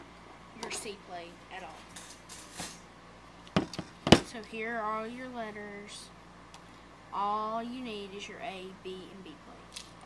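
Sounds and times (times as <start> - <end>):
soft scraping rustle: 1.6 - 2.8.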